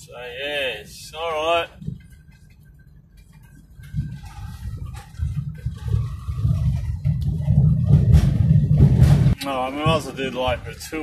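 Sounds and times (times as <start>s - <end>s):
car interior rumble: 0.8s - 11.0s.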